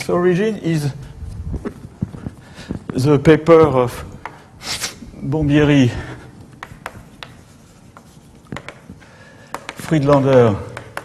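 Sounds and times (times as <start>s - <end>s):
chalk tapping on blackboard: 6.5s - 11.0s.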